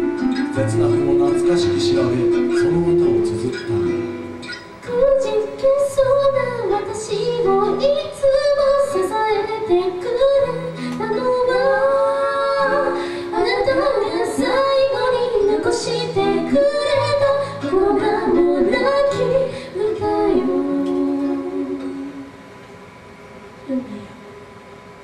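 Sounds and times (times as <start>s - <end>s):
acoustic guitar: 0.0s - 22.7s
woman singing into a microphone: 4.8s - 22.4s.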